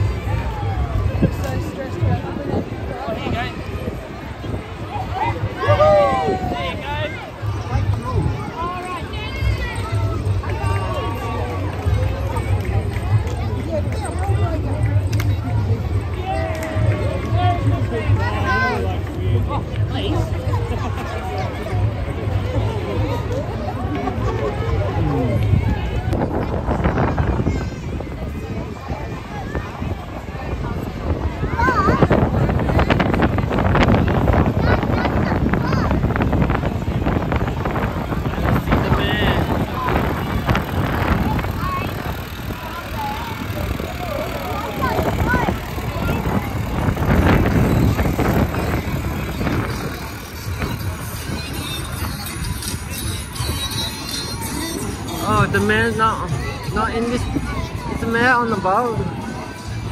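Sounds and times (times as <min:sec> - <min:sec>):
crowd chattering: 0:00.0 - 0:59.9
spectators' voices: 0:00.0 - 0:59.9
music: 0:50.1 - 0:56.8.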